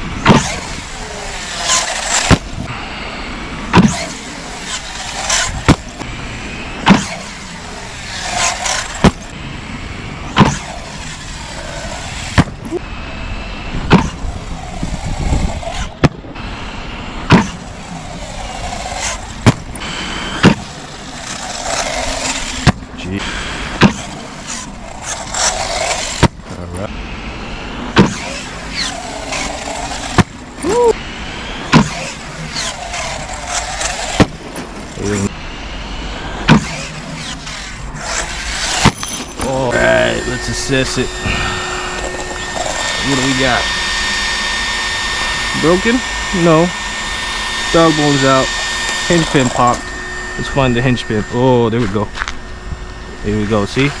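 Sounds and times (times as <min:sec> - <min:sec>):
thuds from landings: 0:00.0 - 0:00.8, 0:01.6 - 0:02.7, 0:03.7 - 0:06.1, 0:06.8 - 0:07.4, 0:08.1 - 0:09.3, 0:10.3 - 0:11.3, 0:12.2 - 0:12.8, 0:13.8 - 0:14.3, 0:15.1 - 0:16.4, 0:17.2 - 0:17.7, 0:18.9 - 0:22.9, 0:23.7 - 0:26.5, 0:27.9 - 0:30.5, 0:31.7 - 0:35.0, 0:36.4 - 0:39.5
electric motors whining: 0:00.0 - 0:54.0.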